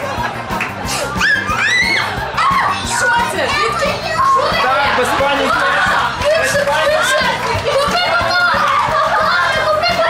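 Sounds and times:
background music: 0.0s - 10.0s
girls shrieking and squealing: 1.0s - 10.0s.

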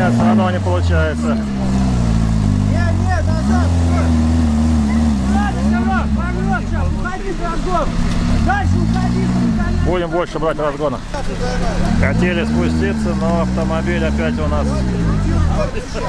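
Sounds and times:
buggy engine revving hard: 0.0s - 16.0s.

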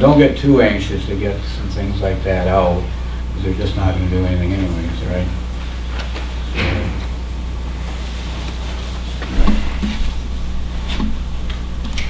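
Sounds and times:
low room hum: 0.0s - 12.0s
faint knocks and rustles: 7.9s - 12.0s.

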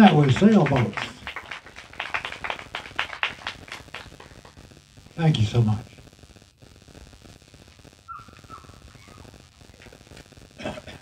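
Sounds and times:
small audience clapping: 0.0s - 4.7s.

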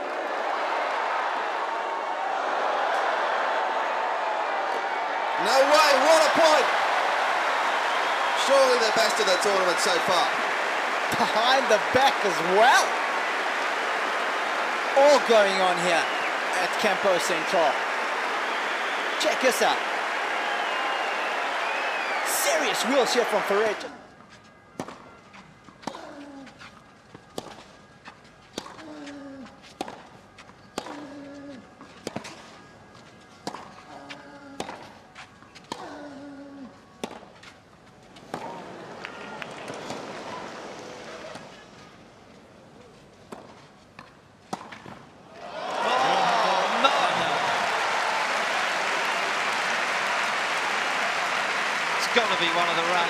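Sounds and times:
crowd applauding and cheering: 0.0s - 24.0s, 45.3s - 53.0s.

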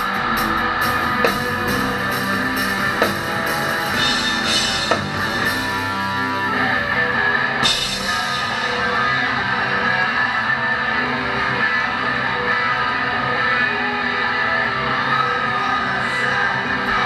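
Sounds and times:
electric guitar chords ringing: 0.0s - 17.0s.

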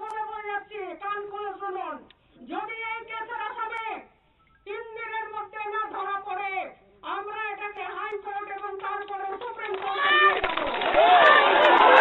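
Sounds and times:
woman shouting through a microphone: 4.7s - 10.6s.

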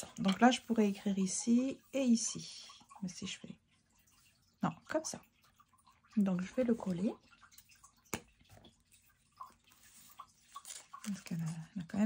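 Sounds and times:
glue stick rustling on paper: 9.6s - 11.3s.

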